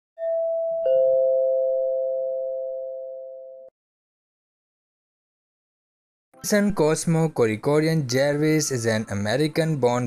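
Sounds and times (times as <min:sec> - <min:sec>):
two-note doorbell chime: 0:00.2 - 0:03.7.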